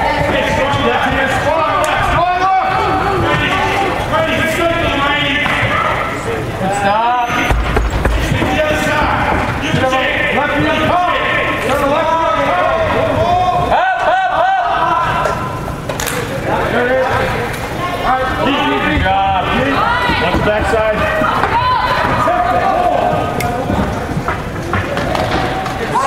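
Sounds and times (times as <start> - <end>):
voices shouting and calling out: 0.0 - 26.0.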